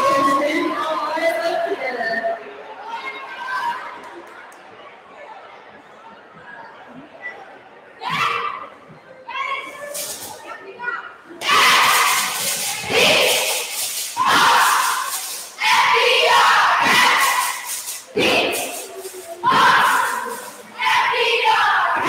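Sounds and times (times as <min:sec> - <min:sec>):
cheerleaders shouting in unison: 0:11.4 - 0:22.0.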